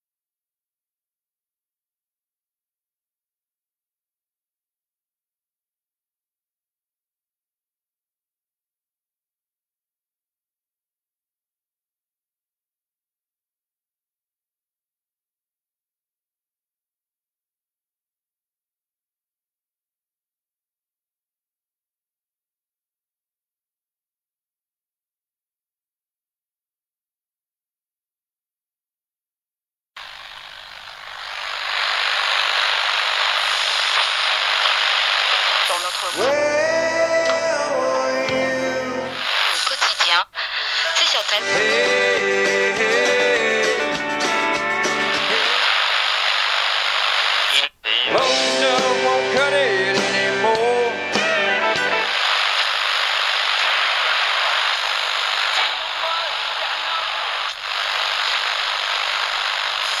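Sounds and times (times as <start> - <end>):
steady rushing hiss: 30.0 - 36.2, 45.0 - 47.6, 52.0 - 60.0
person singing: 35.7 - 39.5, 41.4 - 45.6, 47.9 - 52.2.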